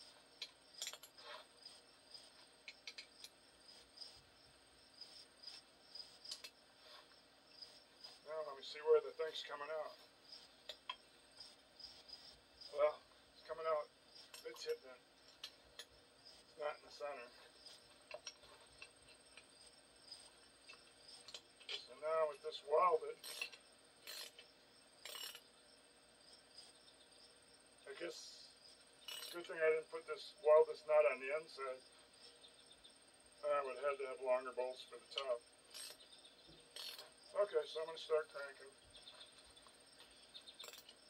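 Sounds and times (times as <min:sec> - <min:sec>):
steel tools clinking on metal: 0:00.8 - 0:01.2, 0:29.1 - 0:29.5, 0:40.5 - 0:41.0.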